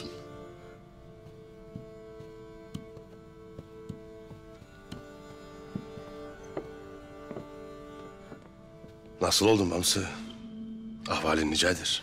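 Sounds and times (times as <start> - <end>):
sustained background score notes: 0.0 - 12.0.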